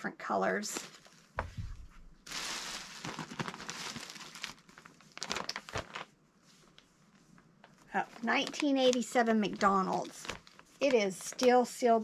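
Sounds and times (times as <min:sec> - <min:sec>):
plastic bags rustling: 0:00.6 - 0:06.8, 0:07.6 - 0:12.0
low thump: 0:01.4 - 0:02.0.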